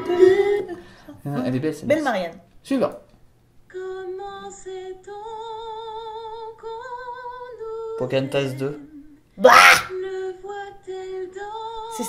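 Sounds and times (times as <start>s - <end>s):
high voice singing wordless notes: 3.7s - 12.0s.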